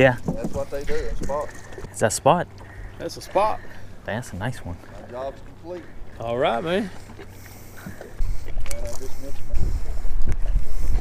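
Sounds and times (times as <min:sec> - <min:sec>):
wind buffeting microphone: 0:07.9 - 0:11.0.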